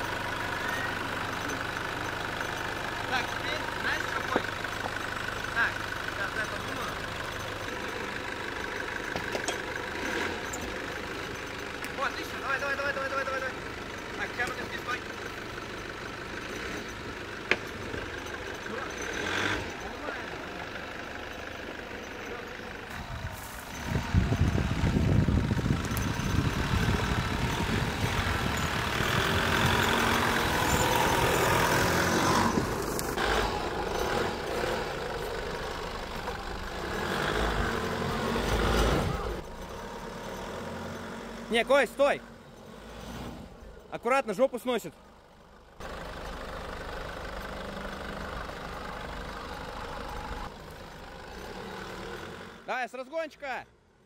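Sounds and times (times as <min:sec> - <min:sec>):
car engine running under load: 0:00.0 - 0:52.7.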